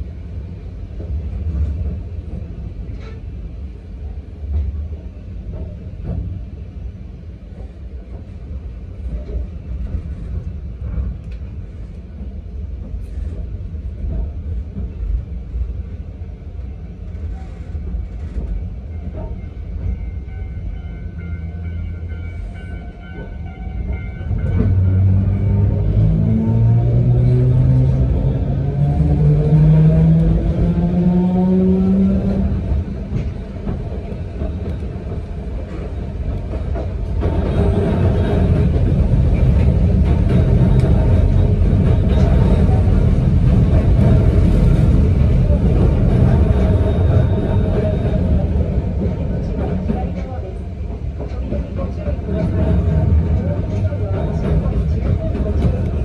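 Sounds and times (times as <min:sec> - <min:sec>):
rumble of train wheels: 0:00.0 - 0:56.0.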